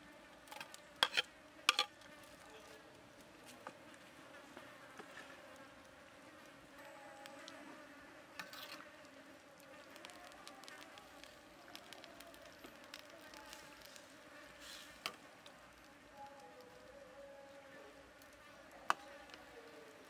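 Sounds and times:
faint steady buzz: 0:00.0 - 0:20.0.

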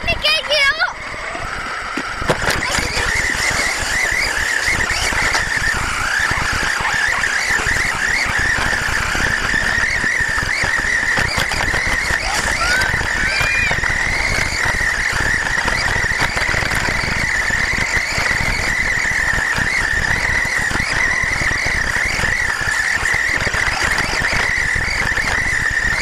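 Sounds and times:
rc truck motor whine: 0:00.0 - 0:26.0
chassis and tyres rattling: 0:01.1 - 0:26.0.

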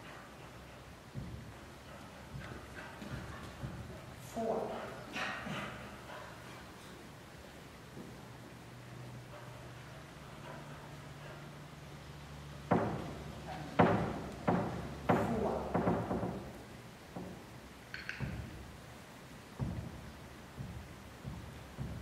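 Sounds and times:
hollow thumps echoing: 0:00.0 - 0:06.6, 0:12.6 - 0:22.0.

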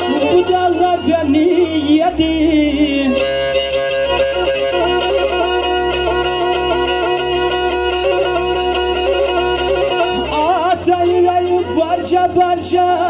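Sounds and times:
bowed fiddle folk melody: 0:00.0 - 0:13.0.

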